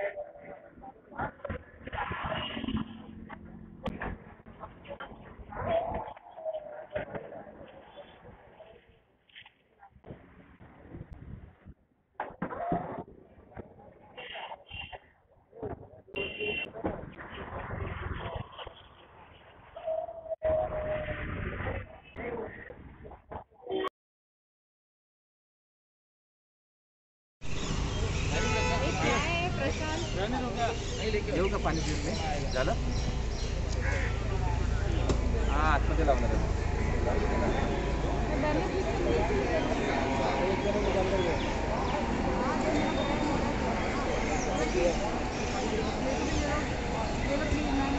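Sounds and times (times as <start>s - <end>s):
street background noise: 0.0s - 23.9s, 27.4s - 47.9s
people talking: 3.9s - 8.9s, 28.3s - 47.9s.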